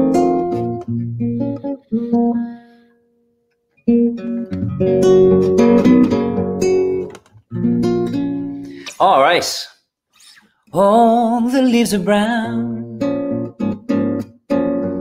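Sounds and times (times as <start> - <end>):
acoustic guitar playing: 0.0 - 9.2, 10.2 - 15.0.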